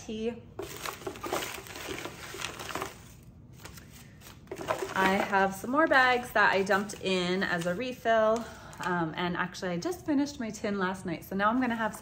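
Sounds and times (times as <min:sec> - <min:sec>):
packaging crinkling and tapping: 0:00.6 - 0:05.4.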